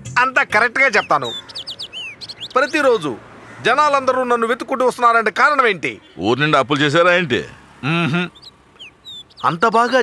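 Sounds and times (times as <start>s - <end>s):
small birds chirping: 0.0s - 10.0s
man speaking: 9.4s - 10.0s.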